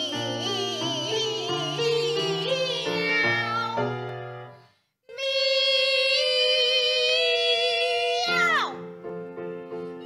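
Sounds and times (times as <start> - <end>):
women singing classical duet: 0.0 - 4.2, 5.1 - 8.4
piano accompaniment: 0.0 - 4.7, 8.3 - 10.0.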